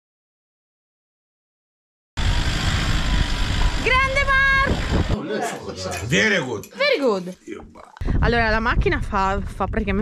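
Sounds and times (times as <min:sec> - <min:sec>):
vehicle rumbling: 0:02.2 - 0:05.2.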